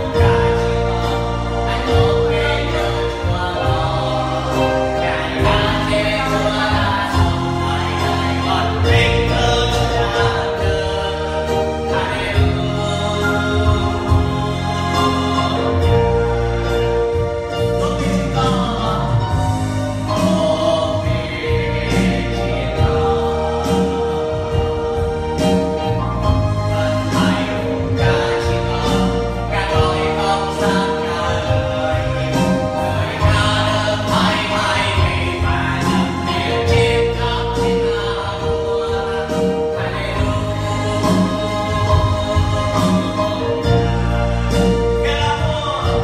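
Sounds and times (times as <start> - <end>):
man singing into a microphone: 0.0 - 24.2, 26.3 - 46.0
steady bass: 0.0 - 46.0
voices singing along: 0.0 - 46.0
worship song on electronic keyboards: 0.0 - 46.0.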